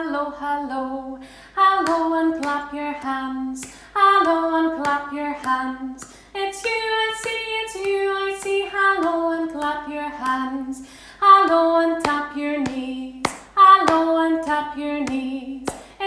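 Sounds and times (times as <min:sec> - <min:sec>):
woman singing unaccompanied: 0:00.0 - 0:16.0
sharp hand claps: 0:01.8 - 0:10.4, 0:11.5 - 0:16.0.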